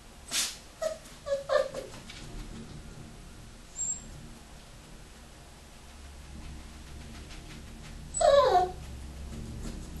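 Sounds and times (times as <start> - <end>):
puppy whining: 0.8 - 2.0, 3.8 - 4.1, 8.0 - 9.0.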